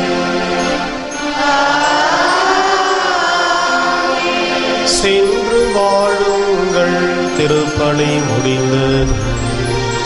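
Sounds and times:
liturgical chant: 0.0 - 10.0.

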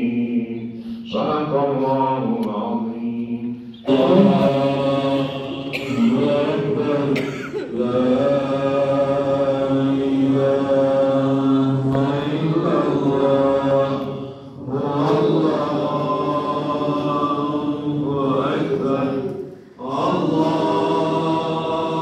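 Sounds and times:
man chanting religious recitation: 0.0 - 22.0.

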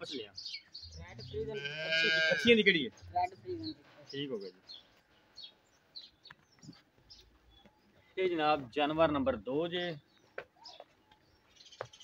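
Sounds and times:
cow mooing: 1.4 - 2.5.

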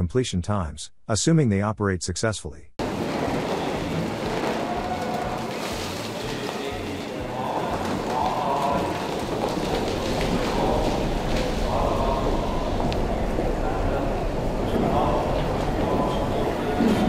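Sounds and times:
falling debris: 2.8 - 16.5
machine grinding through concrete: 2.8 - 17.0
rushing water: 2.8 - 17.0.

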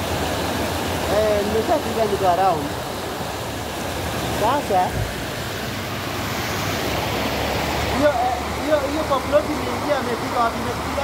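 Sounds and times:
floodwater rushing: 0.0 - 11.0
person talking: 7.9 - 11.0.

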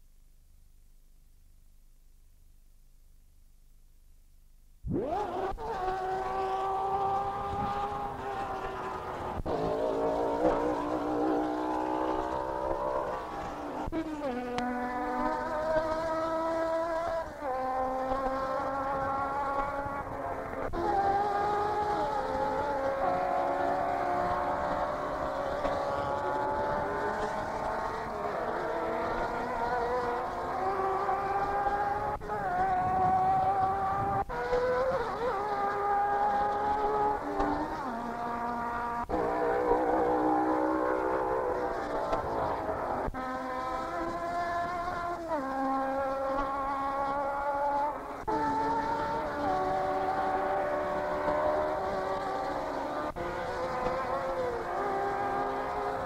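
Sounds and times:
racing car engines passing: 4.9 - 56.0.

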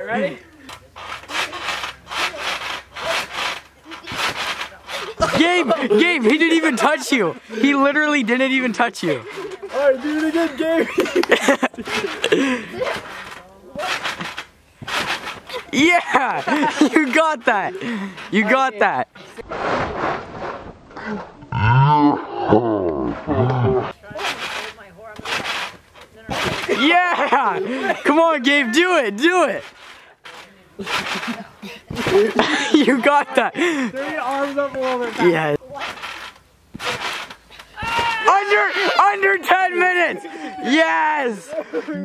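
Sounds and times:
trampoline springs stretching: 0.0 - 42.0
person yelling in excitement: 37.8 - 39.2.

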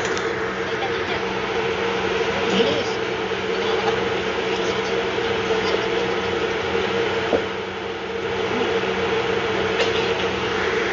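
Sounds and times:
machinery hum: 0.0 - 10.9.

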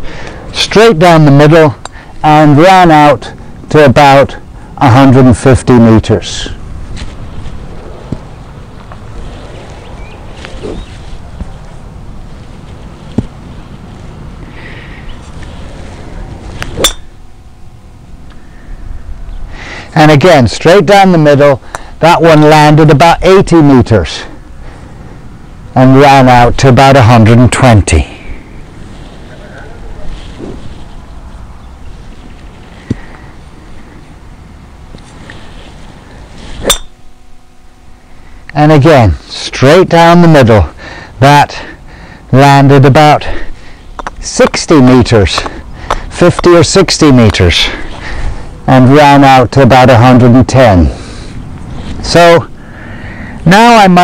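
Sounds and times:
low background noise: 0.0 - 54.0
golf ball struck: 16.6 - 17.5, 36.6 - 37.2.

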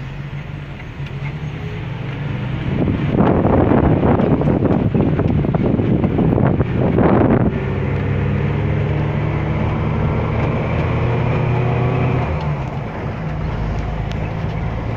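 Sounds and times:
car engine hum: 0.0 - 14.9
road noise: 0.0 - 14.9
wind buffeting microphone: 1.7 - 14.9.

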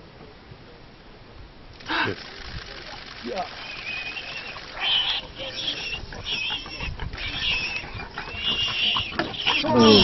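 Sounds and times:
warthog squealing: 3.5 - 10.0.

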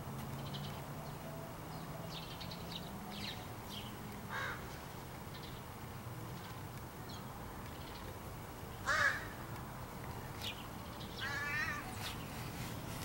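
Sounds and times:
crows calling: 4.3 - 4.8, 8.8 - 9.4, 11.2 - 12.2.

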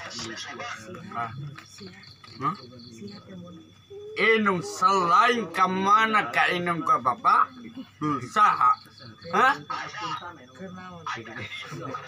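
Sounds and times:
crickets chirping: 0.0 - 12.0
thin high insect trill: 0.0 - 12.0.

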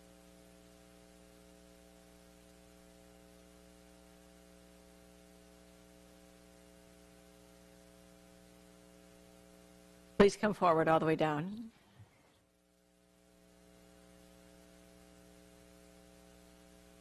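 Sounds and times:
faint electrical hum: 0.0 - 17.0
low hiss: 0.0 - 17.0.

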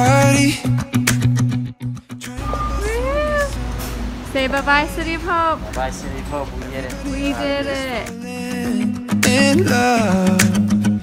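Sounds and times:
person's drawn-out vocal cry: 2.8 - 3.6.

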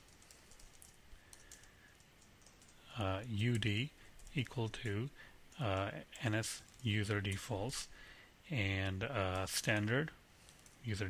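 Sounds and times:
computer keyboard typing: 0.0 - 7.9, 9.2 - 11.0.

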